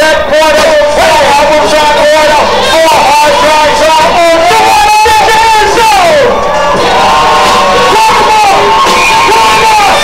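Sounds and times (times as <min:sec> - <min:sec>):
loud distorted hip-hop track: 0:00.0 - 0:10.0
shouted vocals: 0:00.0 - 0:10.0.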